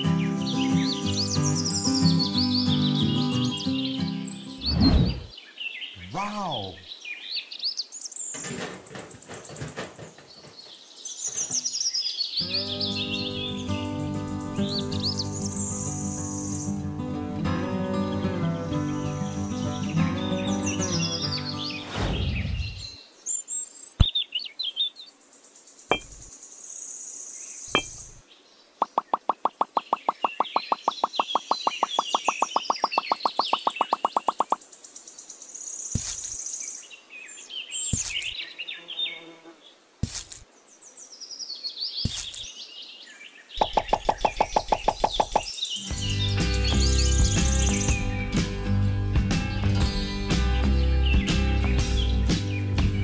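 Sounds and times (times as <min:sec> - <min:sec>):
background music: 0:00.0 - 0:04.7, 0:12.4 - 0:21.8, 0:45.9 - 0:53.0
birds chirping: 0:00.0 - 0:17.2, 0:17.9 - 0:53.0.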